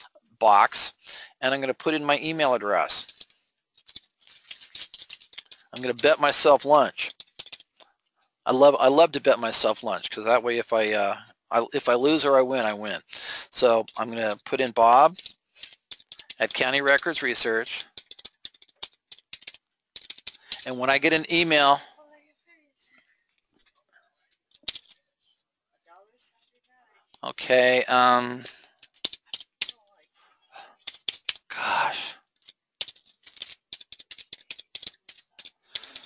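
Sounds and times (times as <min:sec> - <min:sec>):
typing on computer keyboard: 0:03.0 - 0:05.8, 0:17.7 - 0:20.7, 0:32.4 - 0:36.0.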